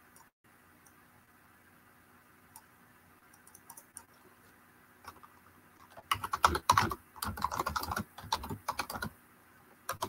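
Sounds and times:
typing on computer keyboard: 5.1s - 9.1s.

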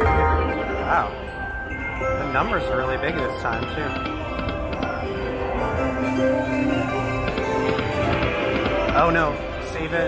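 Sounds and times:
slot machine electronic melody: 0.0s - 10.0s
small chimes: 0.0s - 10.0s.

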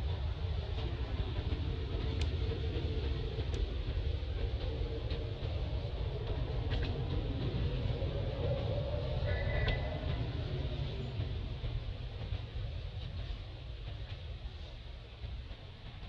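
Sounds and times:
steady low rumble: 0.0s - 16.0s
faint clicks: 2.0s - 2.5s, 3.4s - 3.7s, 6.3s - 7.1s.

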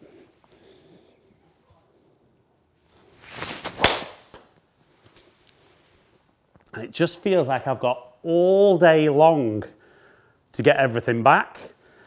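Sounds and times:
club striking golf ball: 3.7s - 4.5s.

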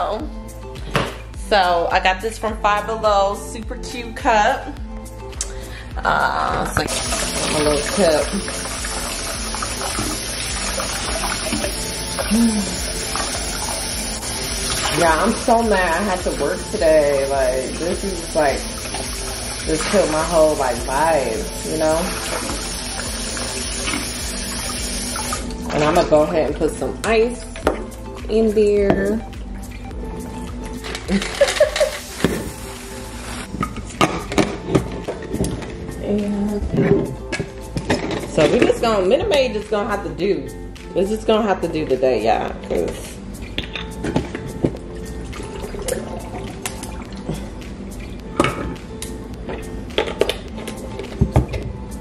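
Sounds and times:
background music: 0.0s - 52.0s
water splashing over glass: 6.8s - 26.4s
faucet running: 6.8s - 28.1s, 29.0s - 33.5s, 44.8s - 48.2s.

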